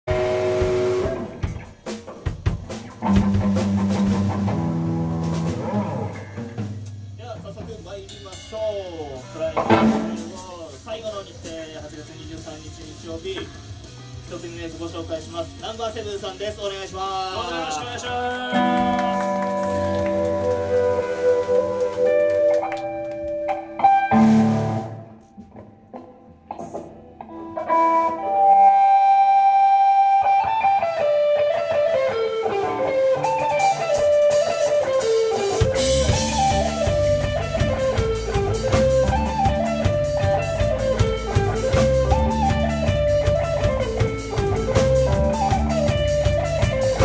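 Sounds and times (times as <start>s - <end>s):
electric guitar ringing chord: 0.1s - 1.5s, 18.4s - 21.0s, 22.6s - 25.2s
electric guitar chord ringing: 0.1s - 1.6s, 18.4s - 21.0s, 22.4s - 25.2s, 26.0s - 47.0s
drum hits: 0.1s - 11.8s, 24.1s - 26.9s, 33.7s - 47.0s.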